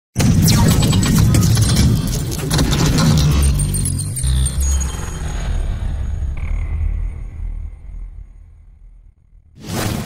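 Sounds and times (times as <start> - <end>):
deep rumble: 2.5 - 9.6.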